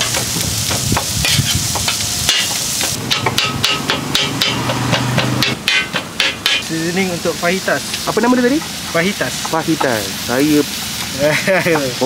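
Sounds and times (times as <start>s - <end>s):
cleaver clacking on steel griddle: 0.0s - 6.7s
meat sizzling on griddle: 0.0s - 12.0s.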